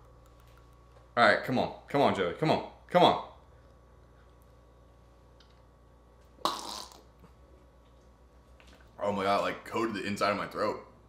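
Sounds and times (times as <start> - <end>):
man spluttering: 6.4 - 7.1.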